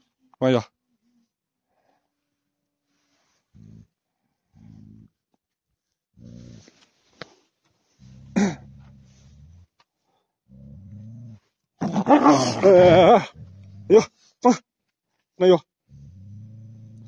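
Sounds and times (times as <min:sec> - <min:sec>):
dog growling deep and low: 0:03.3 - 0:05.4, 0:06.1 - 0:06.9, 0:07.9 - 0:14.2, 0:15.8 - 0:17.0.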